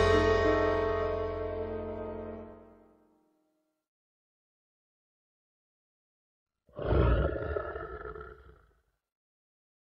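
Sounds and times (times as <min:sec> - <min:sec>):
deep animal-like roar: 0:06.7 - 0:08.7.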